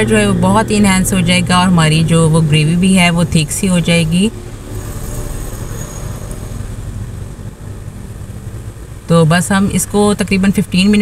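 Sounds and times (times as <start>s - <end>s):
low rumbling hum: 0.0s - 11.0s.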